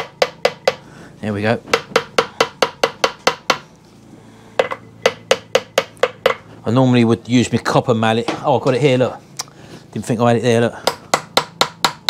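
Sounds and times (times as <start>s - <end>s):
hammer tapping on metal: 0.0s - 0.8s, 1.7s - 3.6s, 4.6s - 6.4s, 10.8s - 12.0s.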